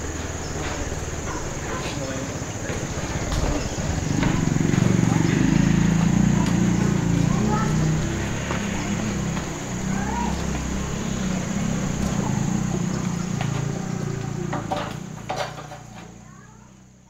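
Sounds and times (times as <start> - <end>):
high-pitched insect drone: 0.0 - 15.2
low murmur: 0.0 - 17.0.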